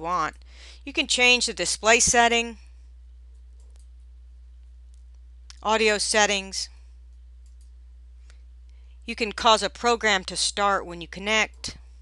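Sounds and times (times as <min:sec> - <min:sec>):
low electrical hum: 0:00.0 - 0:12.0
computer mouse clicks: 0:03.3 - 0:04.0, 0:07.4 - 0:07.8.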